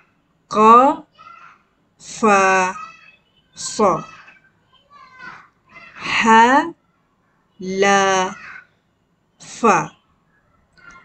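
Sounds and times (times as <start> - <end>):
woman reading aloud: 0.5 - 1.1, 2.0 - 3.0, 3.6 - 4.2, 5.9 - 6.8, 7.6 - 8.6, 9.4 - 10.1
faint child's voice: 1.0 - 1.7, 2.5 - 8.8, 10.0 - 11.0.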